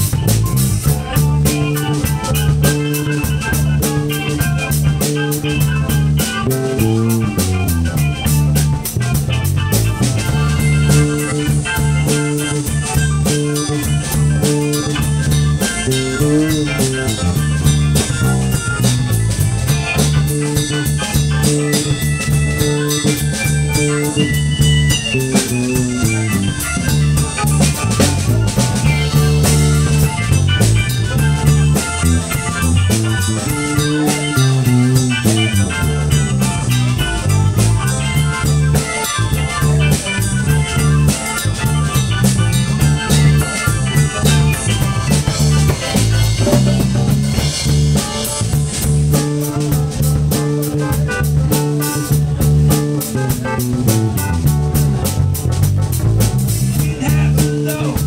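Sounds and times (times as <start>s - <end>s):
drum kit: 0.0s - 58.0s
electric bass: 0.0s - 58.0s
guitar: 0.0s - 58.0s.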